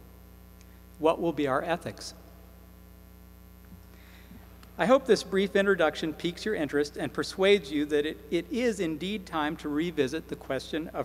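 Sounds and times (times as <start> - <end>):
low electrical mains hum: 0.0 - 11.0.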